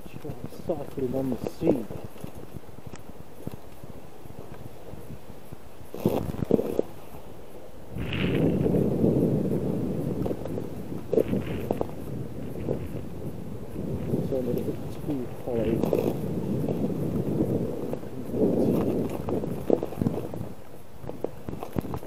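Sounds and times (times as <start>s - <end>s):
bicycle tyres rolling on ice: 0.0s - 22.0s.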